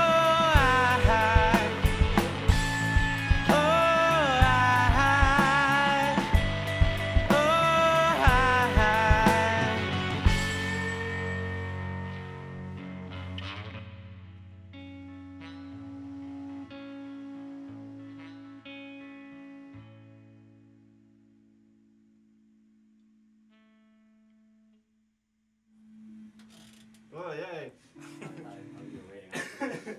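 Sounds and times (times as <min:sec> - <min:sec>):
slow ringing guitar notes: 0:00.0 - 0:20.9.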